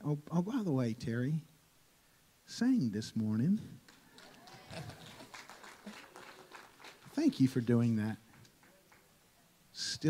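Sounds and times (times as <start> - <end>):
light scattered clapping: 3.9 - 9.2.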